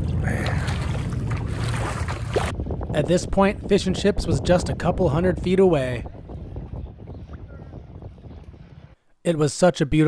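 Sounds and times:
wind on microphone: 0:00.0 - 0:09.0.

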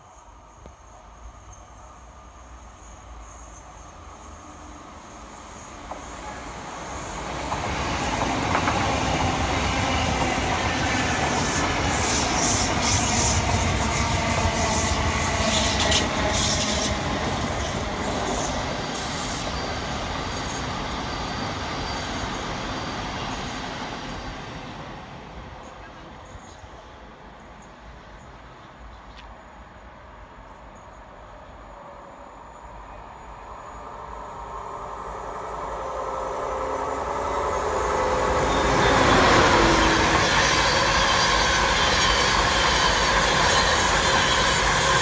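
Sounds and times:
electric train passing on rails: 0:00.0 - 0:45.0.

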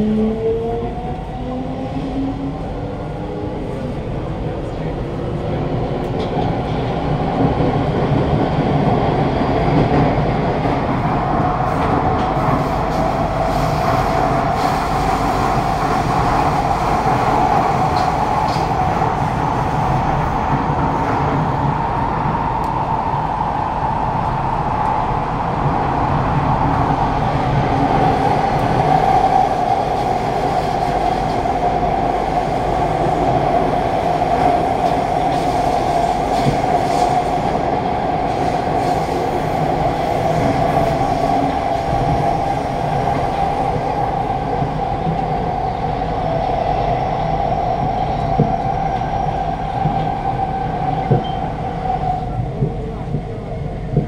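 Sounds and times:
constant train whine: 0:00.0 - 0:54.0
train wheels rumbling on rail: 0:00.0 - 0:54.0.

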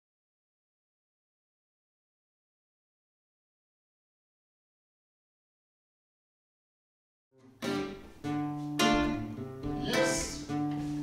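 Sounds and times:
acoustic guitar chords: 0:07.4 - 0:11.0.

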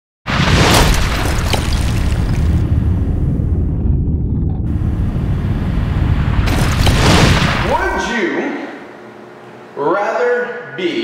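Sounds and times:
deep rumble of booms: 0:00.4 - 0:07.9
whoosh: 0:02.4 - 0:07.9.

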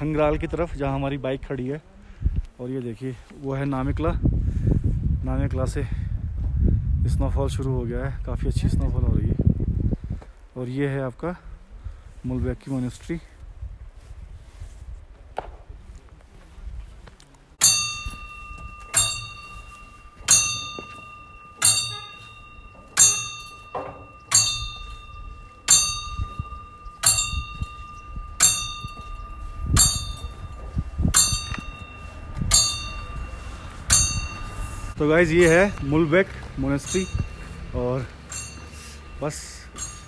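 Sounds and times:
prayer wheel bell ringing: 0:17.6 - 0:40.0.

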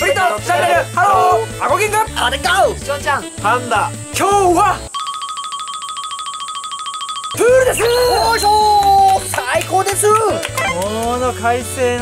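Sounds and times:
rapid electronic beep trill: 0:07.3 - 0:09.4.

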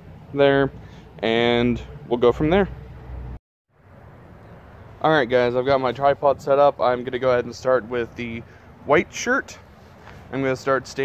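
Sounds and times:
faint outdoor hiss: 0:00.0 - 0:11.0.

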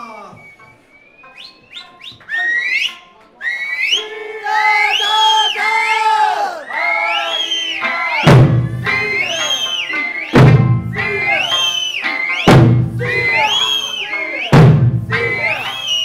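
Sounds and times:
shrill whistles sliding upward: 0:00.0 - 0:16.0
dancers shouting drawn-out calls: 0:03.8 - 0:16.0.

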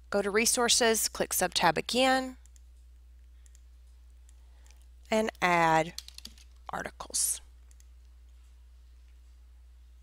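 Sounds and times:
low electrical hum: 0:00.0 - 0:10.0
computer mouse clicks: 0:02.4 - 0:02.7, 0:03.4 - 0:04.9, 0:05.9 - 0:06.7, 0:07.6 - 0:08.1.

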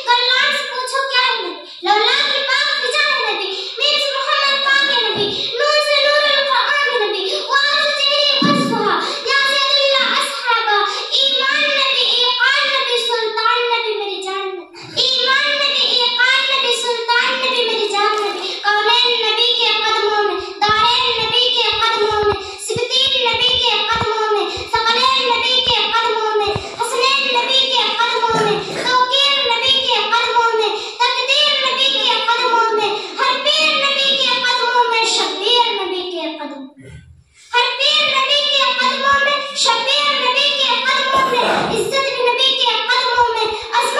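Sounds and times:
girl chanting melodically: 0:00.0 - 0:43.9.

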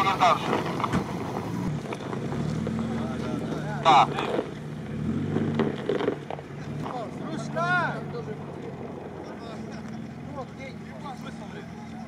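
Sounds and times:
car engine low drone: 0:00.0 - 0:12.0.

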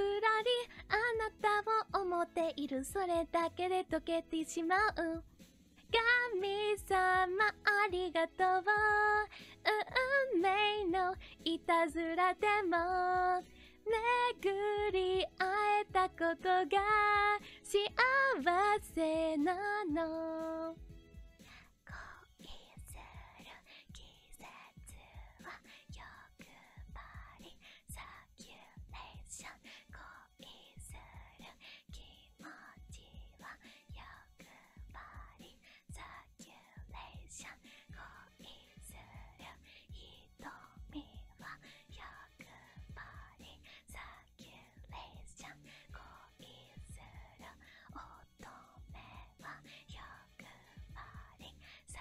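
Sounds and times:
faint music: 0:00.0 - 0:52.0.

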